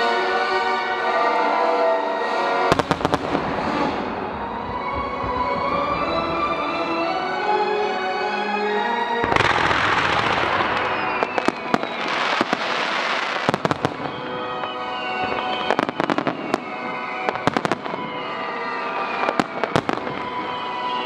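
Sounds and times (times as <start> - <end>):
music playing: 0.0 - 21.0
fireworks bursting and crackling: 2.2 - 21.0.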